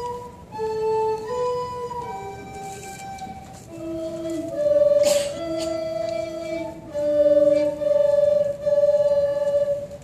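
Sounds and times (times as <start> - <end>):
wind instrument slow melody: 0.0 - 10.0.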